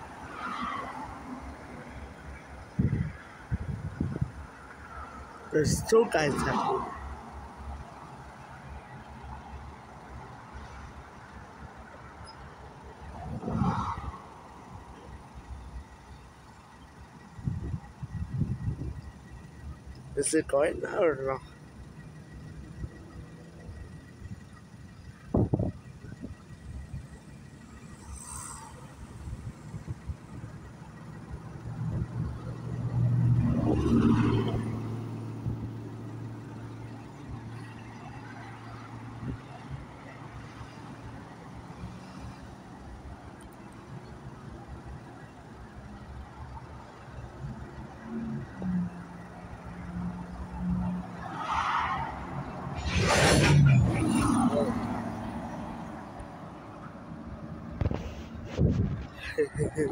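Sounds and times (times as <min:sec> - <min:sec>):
vehicle engine humming: 0:00.0 - 0:59.9.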